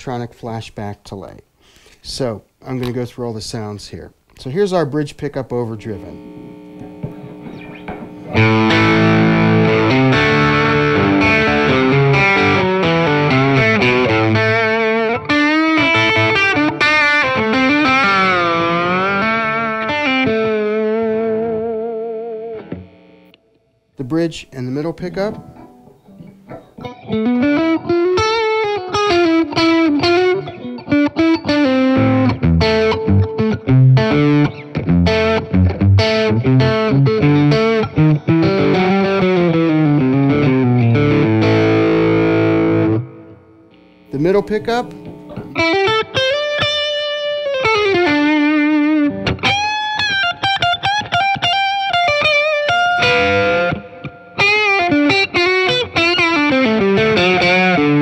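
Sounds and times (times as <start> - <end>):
overdriven electric guitar lead: 5.7 - 23.5, 24.7 - 58.0.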